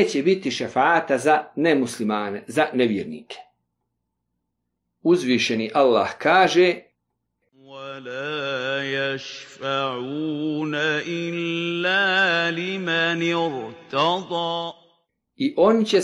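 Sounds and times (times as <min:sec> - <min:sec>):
man chanting melodic recitation: 0:07.6 - 0:14.7.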